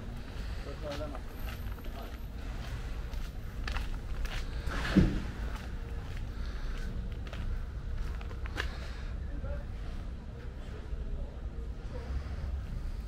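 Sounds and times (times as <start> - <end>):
footsteps walking: 0.0 - 9.0
steady low rumble: 0.0 - 13.0
loud thump: 4.8 - 5.4.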